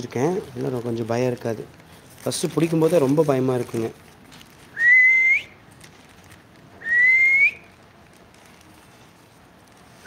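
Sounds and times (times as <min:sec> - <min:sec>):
whistled notes sliding upward: 0:06.8 - 0:07.7.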